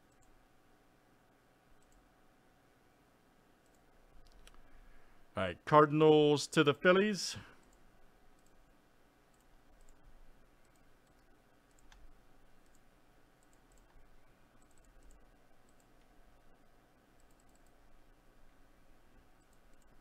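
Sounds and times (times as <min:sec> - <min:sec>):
faint mouse clicks: 0:00.0 - 0:00.4, 0:01.7 - 0:02.1, 0:03.6 - 0:04.7, 0:07.6 - 0:08.7, 0:09.3 - 0:16.1, 0:17.2 - 0:17.8, 0:19.4 - 0:20.0.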